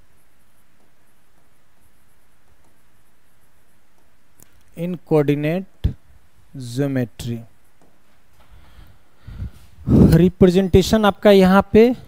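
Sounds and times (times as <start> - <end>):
stylus scratching on glass screen: 0.0 - 5.8
background hiss: 0.0 - 12.0.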